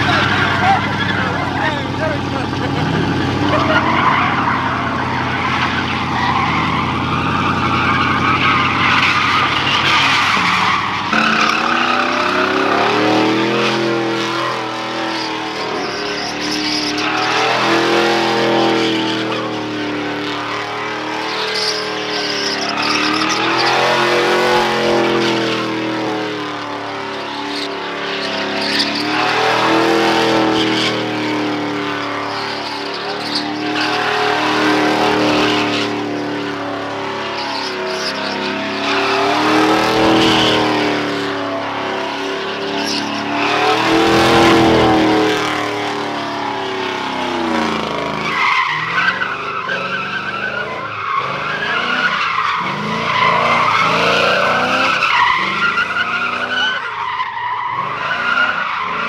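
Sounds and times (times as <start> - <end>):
high-pitched tyre squeal: 0.0 - 59.0
truck engine revving: 0.0 - 59.0
tyres skidding on pavement: 0.0 - 59.0.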